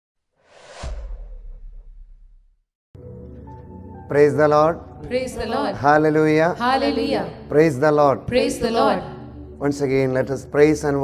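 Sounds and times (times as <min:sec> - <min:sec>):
whoosh sound effect: 0:00.4 - 0:02.6
low boom: 0:00.5 - 0:02.7.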